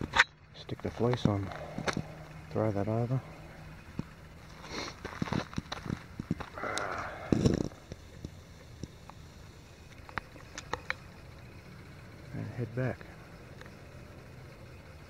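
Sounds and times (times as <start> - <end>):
footsteps on trail: 0.8 - 8.0.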